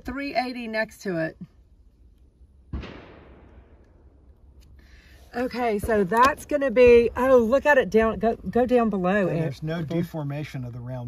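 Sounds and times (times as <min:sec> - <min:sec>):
gunshot with echo: 0:02.7 - 0:04.1.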